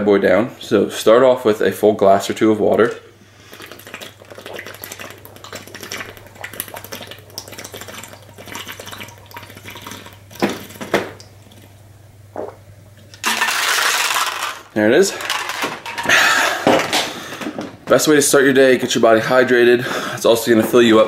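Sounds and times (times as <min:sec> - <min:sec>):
person gulping water: 0:02.9 - 0:14.5.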